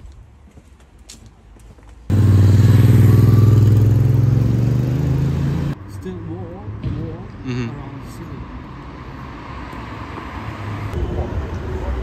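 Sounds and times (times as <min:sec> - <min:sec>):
motor vehicle engine hum: 0:02.0 - 0:07.7.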